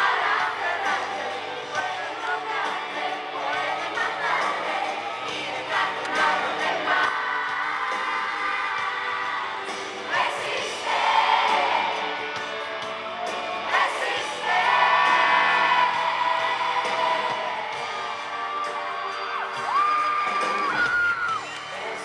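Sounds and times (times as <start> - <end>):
pop vocal group singing: 0.0 - 22.0
audience cheering: 17.6 - 22.0.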